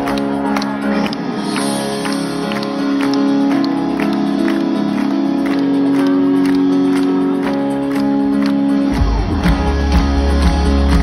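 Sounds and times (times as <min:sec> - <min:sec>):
held keyboard chords: 0:00.0 - 0:11.0.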